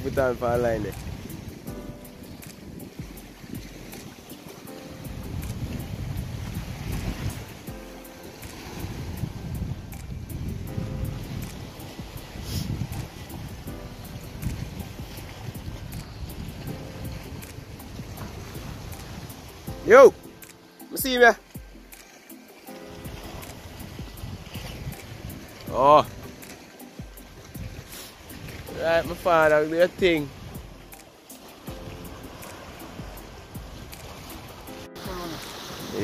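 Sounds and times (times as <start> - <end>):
wind rumbling on microphone: 0.0 - 20.4, 23.0 - 31.0, 31.7 - 36.0
faint music: 0.0 - 36.0
sea washing against rocks: 0.0 - 36.0.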